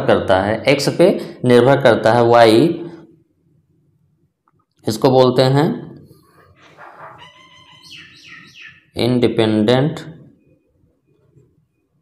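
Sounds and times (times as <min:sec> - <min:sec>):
small bird chirping: 0:06.6 - 0:09.0.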